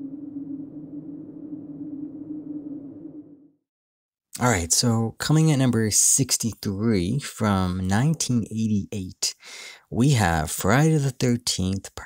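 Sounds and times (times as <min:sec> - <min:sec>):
low drone: 0:00.0 - 0:03.6.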